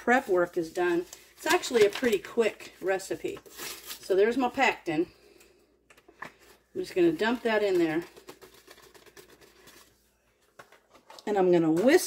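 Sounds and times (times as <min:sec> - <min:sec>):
powder shaken from plastic packet: 0:07.1 - 0:10.0.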